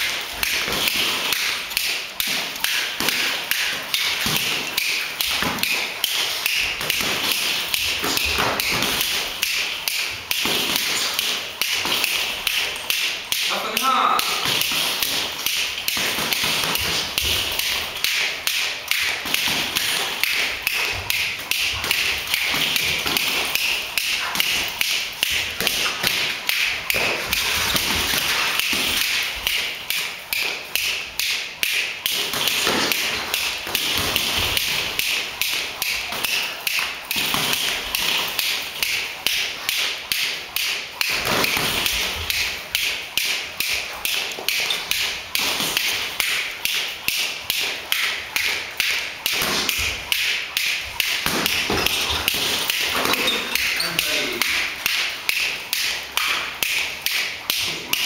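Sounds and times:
boxing gloves taps and thuds: 0.0 - 58.0
footwork during sparring: 0.0 - 58.0.

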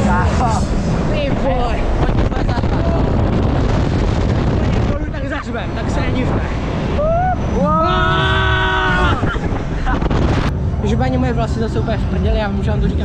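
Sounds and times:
wind buffeting microphone: 0.0 - 13.0
rider screaming: 7.0 - 9.4.

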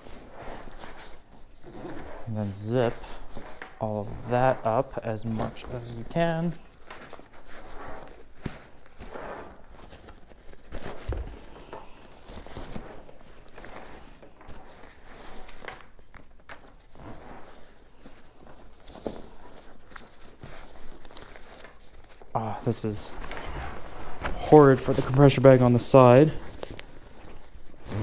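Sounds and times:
backpack fabric rustling: 0.0 - 28.0.

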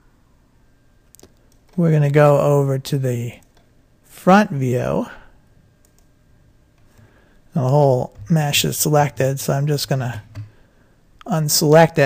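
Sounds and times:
computer mouse clicks: 1.1 - 1.8, 3.4 - 3.7, 5.8 - 6.1.

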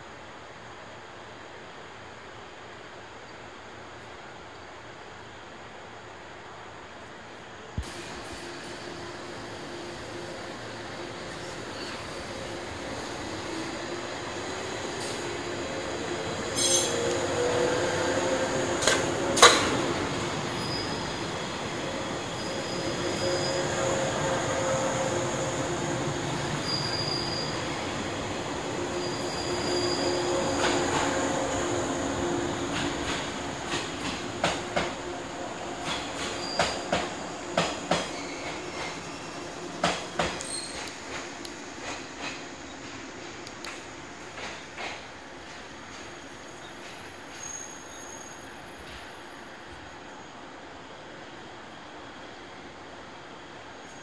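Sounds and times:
wheels squealing: 26.4 - 27.8.

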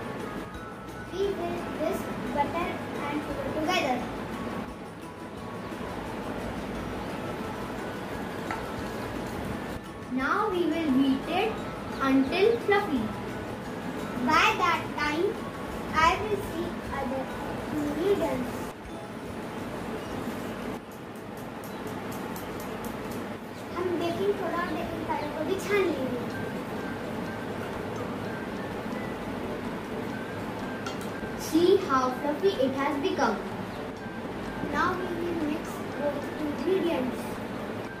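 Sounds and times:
faint background music: 0.0 - 38.0.

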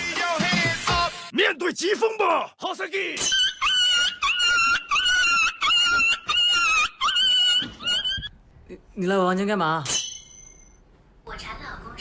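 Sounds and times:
dog whining: 3.6 - 8.3.

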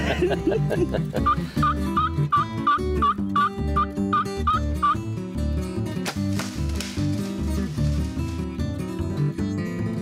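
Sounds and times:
wild turkey calling: 1.2 - 5.0.

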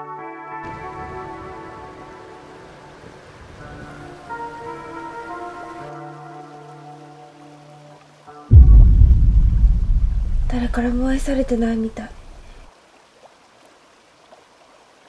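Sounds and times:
soft slow film music: 0.0 - 8.5
loud rush of water: 0.7 - 15.0.

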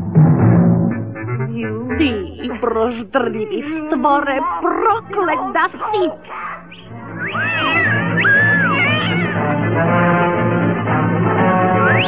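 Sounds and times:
orchestral film score: 6.9 - 12.0
cartoon tiger yowling: 7.2 - 9.4.

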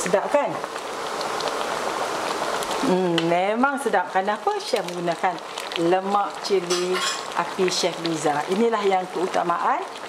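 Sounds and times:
curry bubbling in a wok: 0.0 - 10.0.

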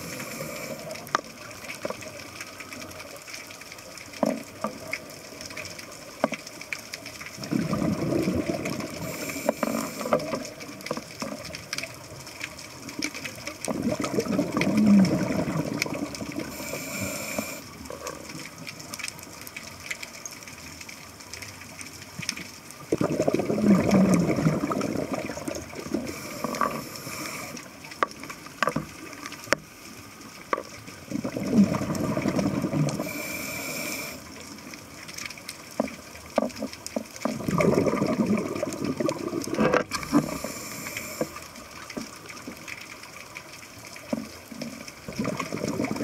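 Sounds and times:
hiss of inhalation: 0.0 - 1.0, 8.8 - 10.4, 16.4 - 17.7, 26.0 - 27.7, 32.9 - 34.4, 40.0 - 41.6
faint clicks: 0.1 - 23.1, 24.4 - 46.0
regulator bubbling exhalations: 7.4 - 10.6, 13.6 - 18.3, 22.9 - 27.7, 31.0 - 34.3, 37.2 - 41.6, 45.0 - 46.0.

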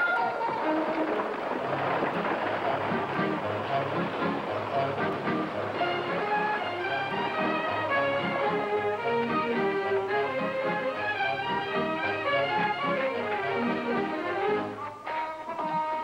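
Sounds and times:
bustle of horses and wagons: 0.0 - 16.0
orchestral strings: 0.0 - 16.0.

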